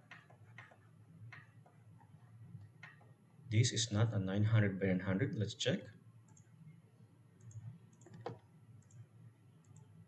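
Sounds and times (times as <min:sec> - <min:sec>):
computer mouse clicks: 0:00.0 - 0:03.1, 0:06.3 - 0:06.5, 0:07.4 - 0:10.0
low background hum: 0:00.0 - 0:10.0.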